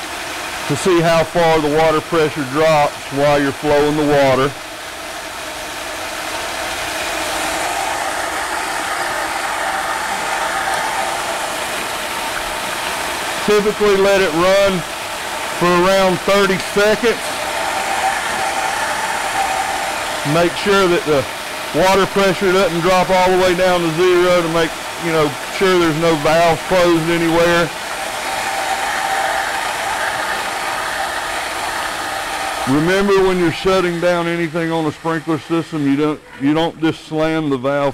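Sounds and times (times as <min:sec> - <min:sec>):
water rushing from drain pipe: 0:00.0 - 0:37.8.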